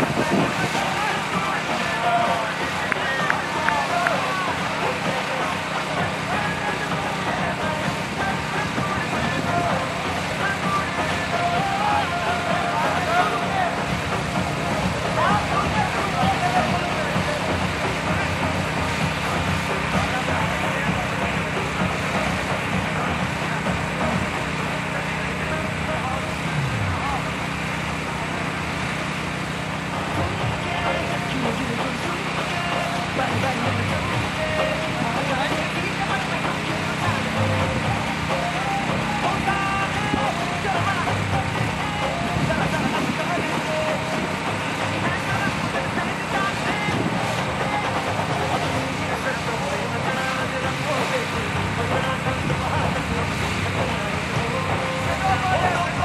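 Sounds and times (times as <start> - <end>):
distant voices: 0.0 - 56.0
low hum: 0.0 - 56.0.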